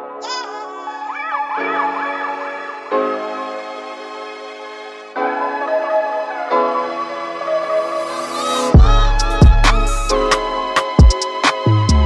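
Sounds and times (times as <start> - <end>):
held keyboard chords: 0.0 - 12.0.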